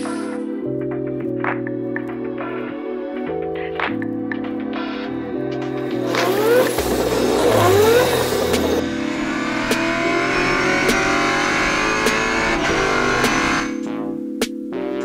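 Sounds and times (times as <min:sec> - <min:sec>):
music with steady beat: 0:00.0 - 0:15.0
race car engine revving: 0:06.0 - 0:13.8.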